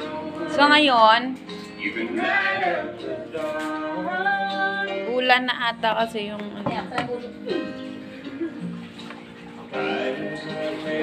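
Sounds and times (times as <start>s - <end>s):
background song: 0.0s - 11.0s.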